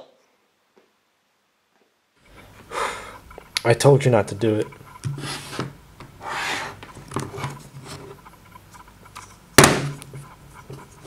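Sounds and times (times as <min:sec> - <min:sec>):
scraping across wooden tabletop: 0:04.8 - 0:08.2.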